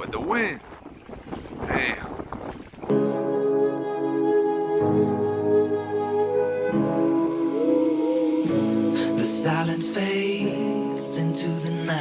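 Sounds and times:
wind buffeting microphone: 0.0s - 5.1s
flute music: 2.9s - 11.0s.

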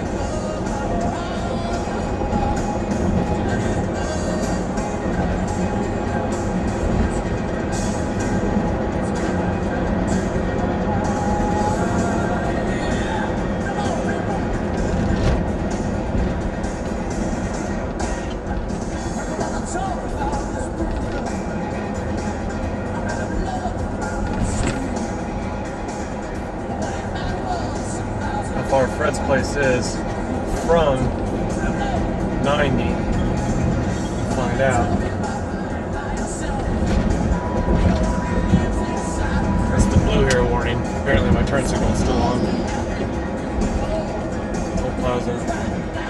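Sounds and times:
engine and road rumble: 0.0s - 46.0s
music with singing on car stereo: 0.0s - 46.0s.

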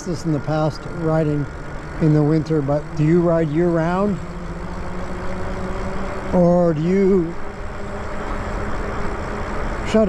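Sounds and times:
faint steady hum: 0.0s - 10.0s
wind and road noise: 0.0s - 10.0s.

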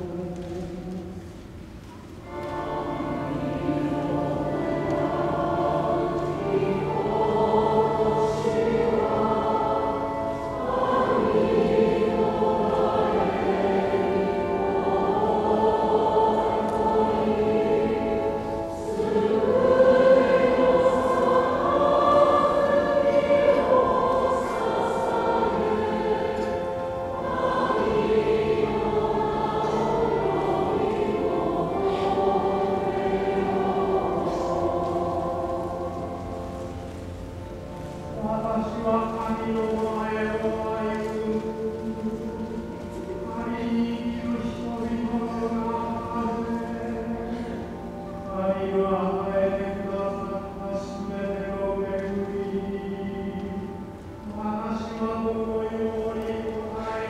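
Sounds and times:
choir singing: 0.0s - 1.4s, 2.2s - 57.0s.

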